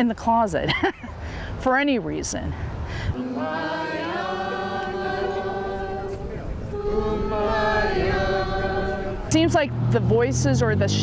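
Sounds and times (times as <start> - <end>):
crowd singing held notes: 3.2 - 9.4.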